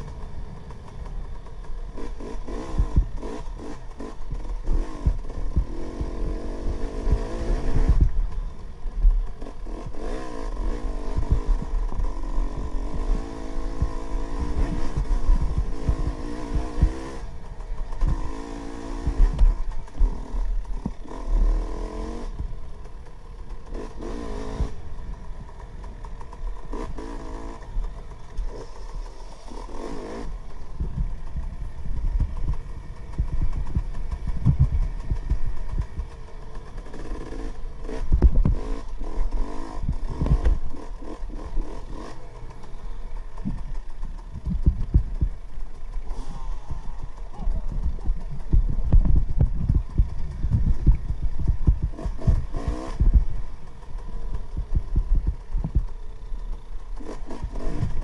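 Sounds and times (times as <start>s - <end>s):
low thumps and rattles: 0.0s - 8.4s, 11.1s - 21.3s, 30.6s - 58.0s
dirt bike engine revving: 0.0s - 58.0s.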